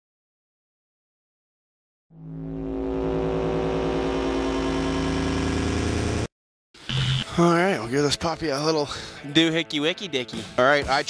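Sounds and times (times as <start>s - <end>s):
engine running: 2.6s - 6.3s.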